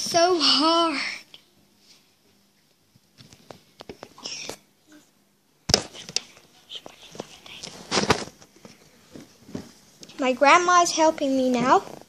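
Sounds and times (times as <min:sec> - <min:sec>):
handling noise on microphone: 0:05.7 - 0:09.9.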